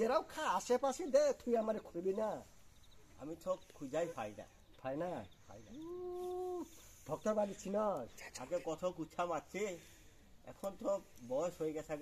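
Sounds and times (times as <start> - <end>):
long voiced call: 5.7 - 6.8.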